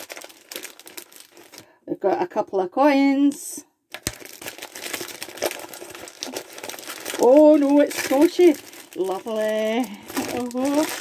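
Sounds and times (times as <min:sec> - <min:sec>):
gift wrapping crinkling and rustling: 0:00.0 - 0:01.7, 0:03.3 - 0:11.0.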